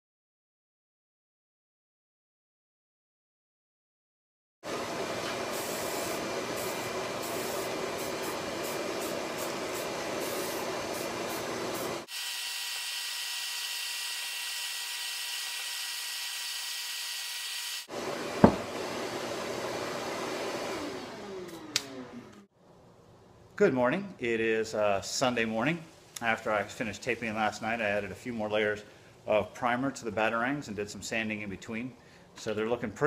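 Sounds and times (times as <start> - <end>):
aerosol spray can hissing: 5.5 - 12.1.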